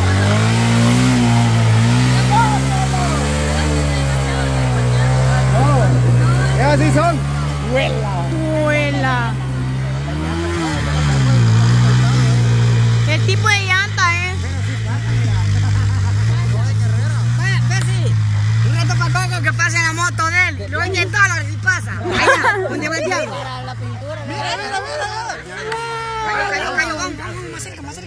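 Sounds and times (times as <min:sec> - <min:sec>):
people shouting: 0:00.0 - 0:09.6, 0:24.2 - 0:27.2
motorcycle engine running hard: 0:00.0 - 0:28.0.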